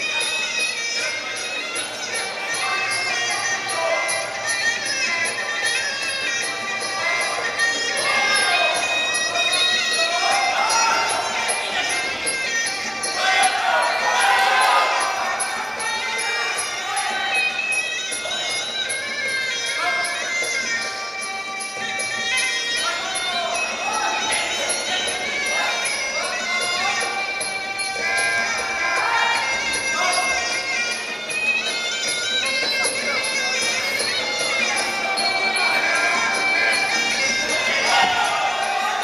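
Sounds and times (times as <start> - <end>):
voices: 0.0 - 39.0.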